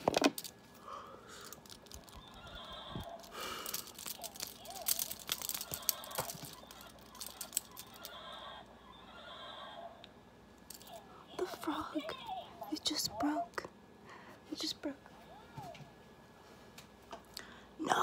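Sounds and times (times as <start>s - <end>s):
crumpled wrapper crackling: 1.4s - 8.2s.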